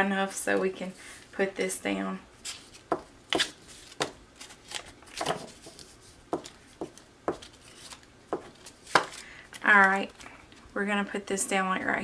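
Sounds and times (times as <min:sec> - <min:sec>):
paper rustling: 0:02.4 - 0:10.3.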